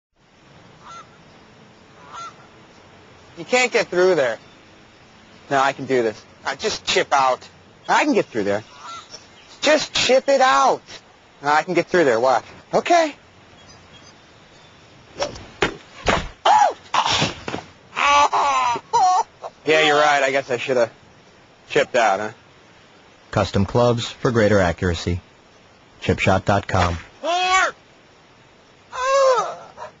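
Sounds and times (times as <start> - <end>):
outdoor ambience: 0.1 - 30.0
honking bird call: 0.7 - 2.7, 7.8 - 9.8
high whimpering cry: 28.9 - 30.0.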